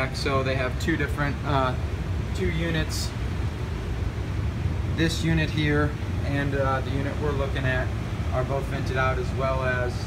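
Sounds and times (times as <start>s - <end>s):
blower fan rumbling: 0.0s - 10.0s.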